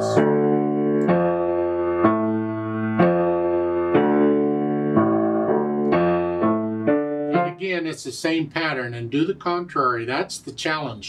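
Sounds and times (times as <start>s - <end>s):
grand piano arpeggio: 0.0s - 7.6s.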